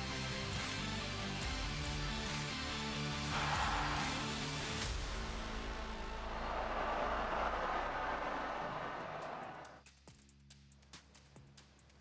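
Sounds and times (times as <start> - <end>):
low background music: 0.0 - 8.2
stadium crowd roaring: 3.2 - 9.8.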